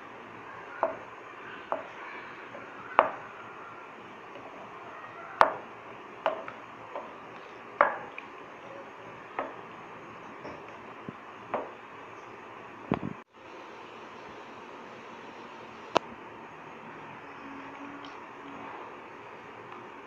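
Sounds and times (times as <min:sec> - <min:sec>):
steady background hiss: 0:00.0 - 0:20.0
spoon knocking against pan: 0:06.3 - 0:07.1, 0:07.8 - 0:08.2.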